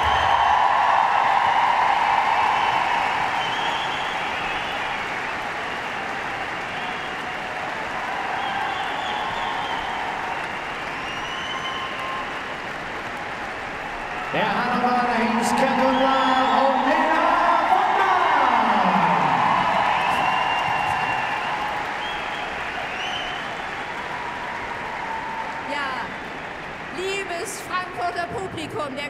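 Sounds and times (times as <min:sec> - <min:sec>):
audience applauding: 0:00.0 - 0:29.0
man speaking: 0:14.3 - 0:19.5.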